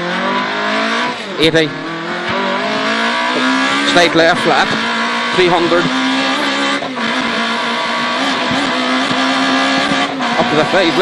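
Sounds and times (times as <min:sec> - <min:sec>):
car engine accelerating hard: 0:00.0 - 0:11.0.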